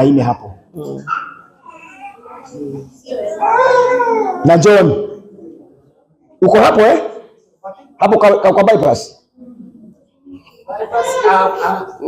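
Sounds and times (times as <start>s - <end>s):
faint high-pitched voice calling: 0.9s - 4.5s.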